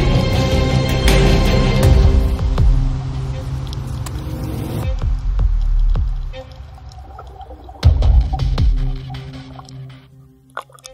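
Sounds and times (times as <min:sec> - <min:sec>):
low droning pad music: 0:00.0 - 0:10.9.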